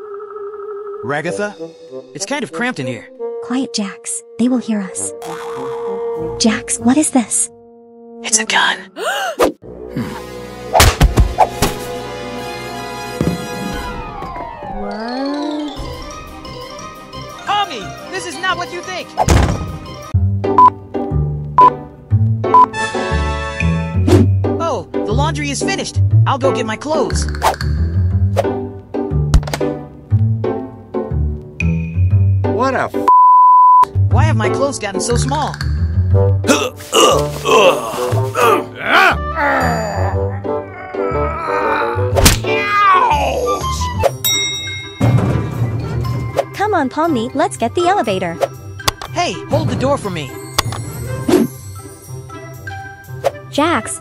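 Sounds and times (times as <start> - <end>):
cartoon descending tone: 14.6 - 15.9
wordless vocal sounds: 36.4 - 44.0.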